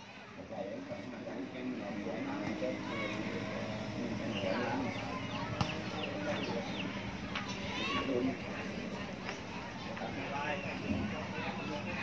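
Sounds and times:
faint background voices: 0.0 - 12.0
bird chirping: 2.3 - 8.0.

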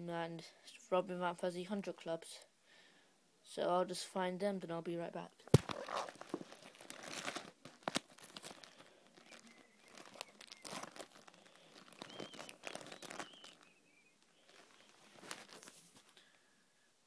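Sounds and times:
cards and plastic crinkling: 5.5 - 16.2.

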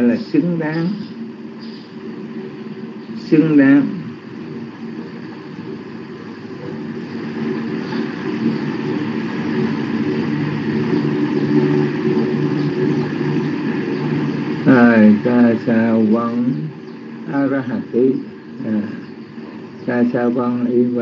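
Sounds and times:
low machine hum: 0.0 - 21.0.

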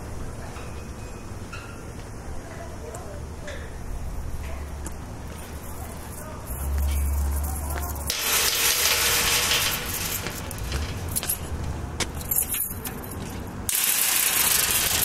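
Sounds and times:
low hum: 3.8 - 13.2.

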